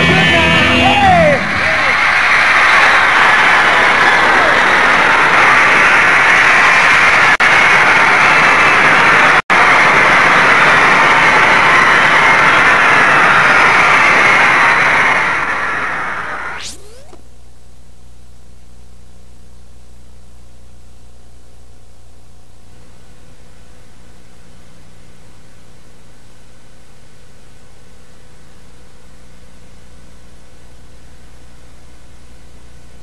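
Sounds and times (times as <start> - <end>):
concert crowd screaming and cheering: 0.0 - 17.2
pitch sweep: 14.0 - 17.2.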